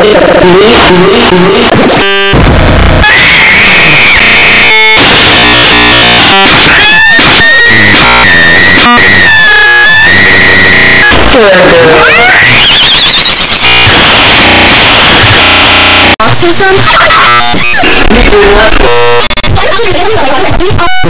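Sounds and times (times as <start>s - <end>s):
harsh distorted noise: 0.0s - 21.0s.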